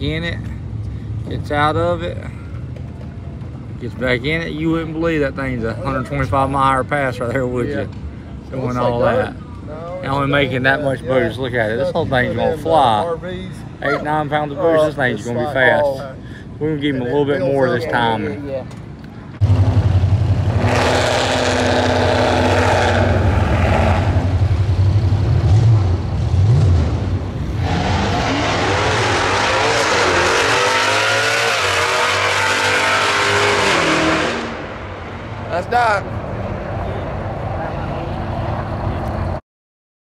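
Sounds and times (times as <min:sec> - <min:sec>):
loud engine running: 0:19.3 - 0:34.8
drag racing car engine accelerating: 0:19.4 - 0:34.9.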